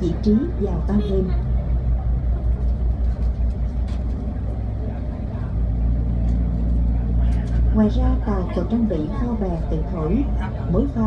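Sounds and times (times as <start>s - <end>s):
ferry engines rumbling: 0.0s - 11.0s.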